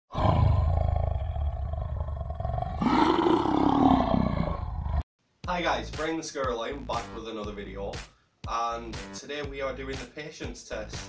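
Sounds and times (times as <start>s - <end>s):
lion growling and roaring: 0.1s - 5.0s.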